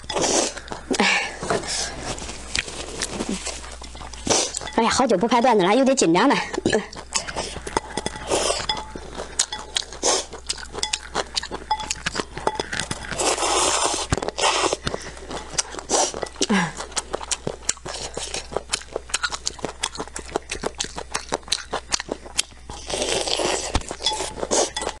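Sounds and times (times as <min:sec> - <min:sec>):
wet chewing and lip-smacking: 0:06.5 - 0:25.0
chopsticks tapping bowl: 0:07.6 - 0:09.9, 0:10.5 - 0:13.0.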